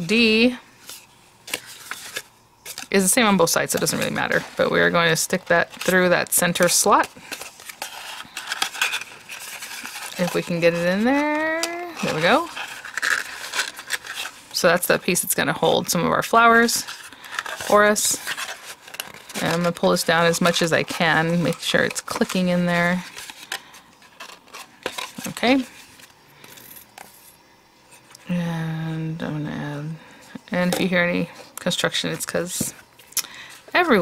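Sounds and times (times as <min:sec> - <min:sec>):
stiff cardstock rustling and scraping: 0:00.2 - 0:28.2.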